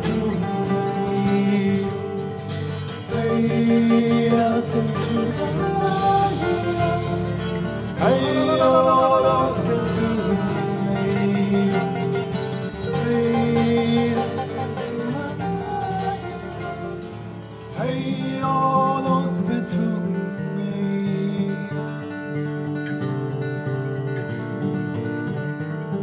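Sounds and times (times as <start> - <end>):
person singing wordlessly: 0.0 - 2.4, 3.0 - 17.0, 17.7 - 21.7
fingerpicked acoustic guitar: 0.0 - 26.0.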